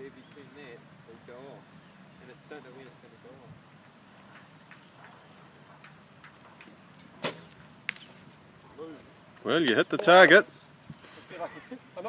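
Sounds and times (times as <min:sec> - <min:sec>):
arrow striking target: 0:07.1 - 0:08.0.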